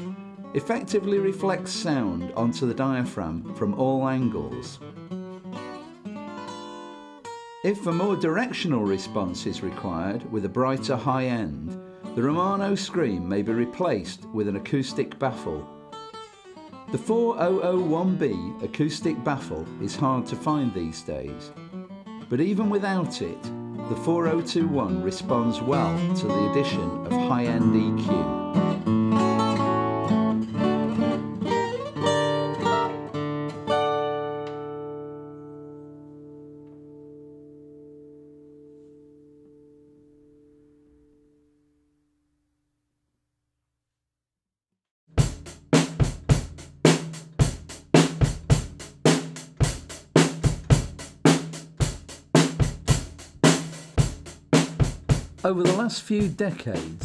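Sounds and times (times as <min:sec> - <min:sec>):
acoustic guitar plucked notes: 0:00.0 - 0:41.6, 0:55.4 - 0:57.0
drum kit steady beat: 0:45.2 - 0:57.0.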